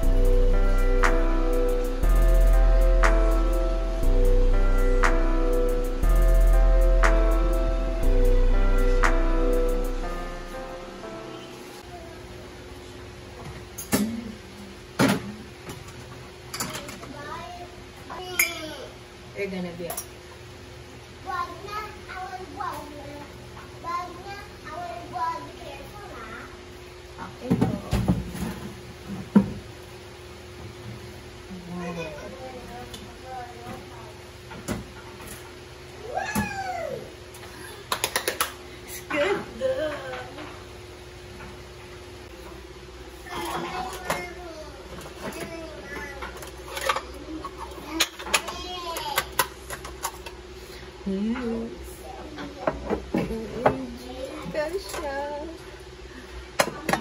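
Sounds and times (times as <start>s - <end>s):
faint steady hum: 0.0s - 27.9s.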